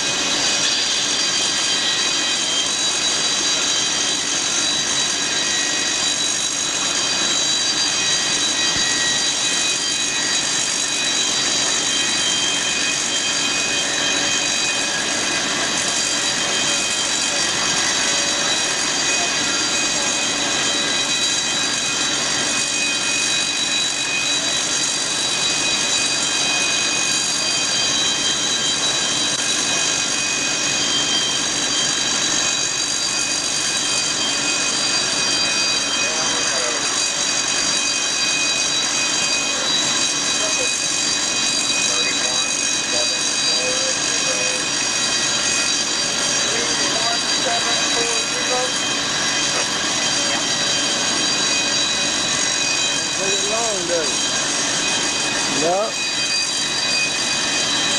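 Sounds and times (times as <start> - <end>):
foam generators rushing: 0.0 - 57.9
high-pitched whines: 0.0 - 57.9.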